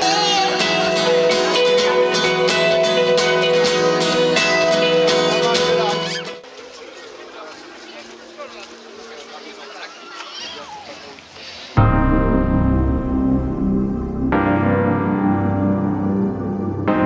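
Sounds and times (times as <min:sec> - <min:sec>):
band music with guitar: 0:00.0 - 0:06.4
murmur of crowd talking: 0:00.0 - 0:11.8.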